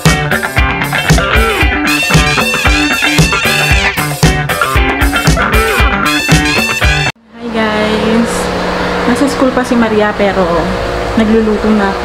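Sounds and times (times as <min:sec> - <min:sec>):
music: 0:00.0 - 0:07.2
woman speaking: 0:07.3 - 0:12.0.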